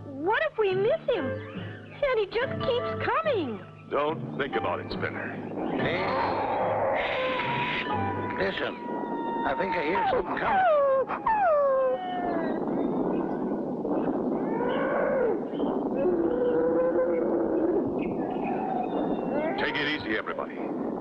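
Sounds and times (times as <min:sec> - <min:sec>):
cartoon creature crying and howling: 0:09.1 - 0:12.4.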